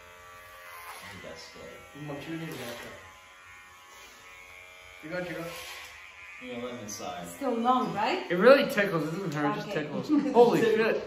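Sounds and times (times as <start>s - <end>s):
electric hair clippers buzzing: 0.0s - 11.0s.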